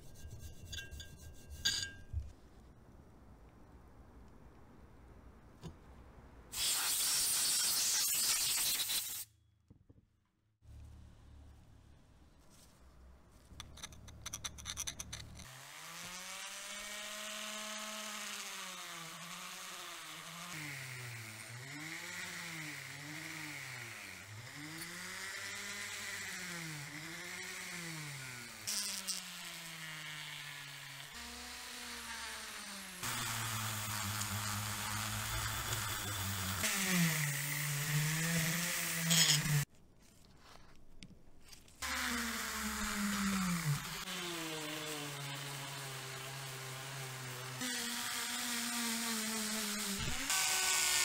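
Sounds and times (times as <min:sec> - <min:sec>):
rotary tool wire brushing metal: 0:00.0 - 0:02.1.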